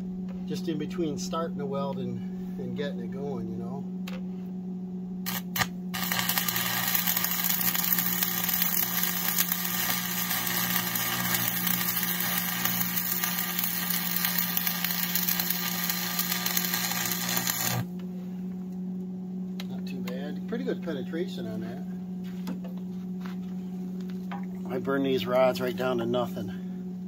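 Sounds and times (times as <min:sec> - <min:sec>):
low hum: 0:00.0 - 0:27.0
welding arc crackling: 0:05.2 - 0:17.9
welding arc strikes: 0:05.2 - 0:17.9.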